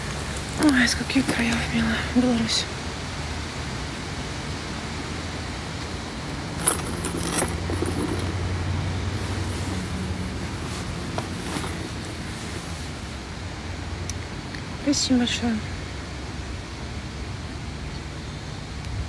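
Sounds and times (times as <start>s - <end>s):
vehicle engine hum: 0.0s - 19.0s.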